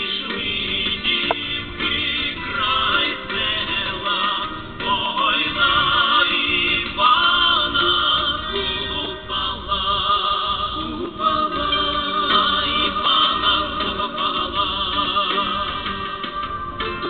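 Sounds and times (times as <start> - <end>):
group singing folk song: 0.0 - 17.0.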